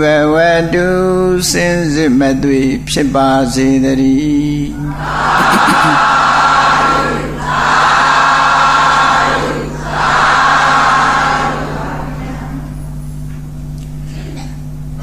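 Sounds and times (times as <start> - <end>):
steady low hum: 0.8 - 7.9.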